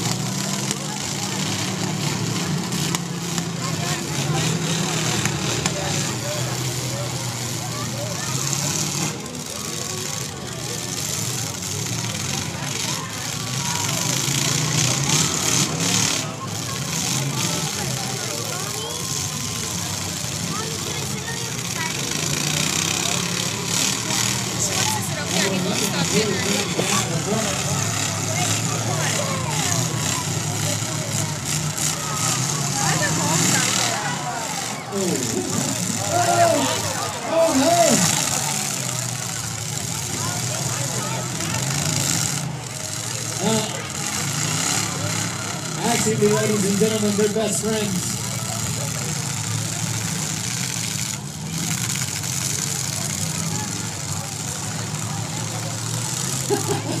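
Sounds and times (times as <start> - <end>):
car engines revving: 0.0 - 57.0
crowd chatter: 0.0 - 57.0.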